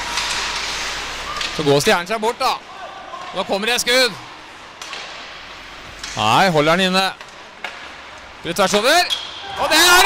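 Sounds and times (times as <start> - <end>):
indoor ice rink background: 0.0 - 10.0
hockey stick hitting puck: 4.8 - 5.3, 7.2 - 8.0.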